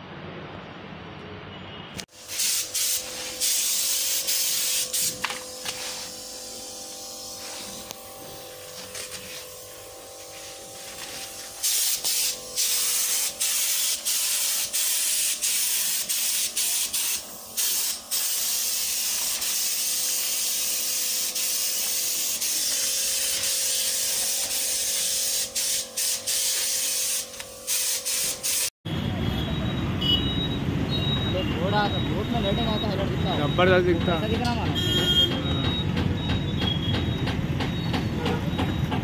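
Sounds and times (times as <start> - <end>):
spray gun hissing: 2.1 - 28.8.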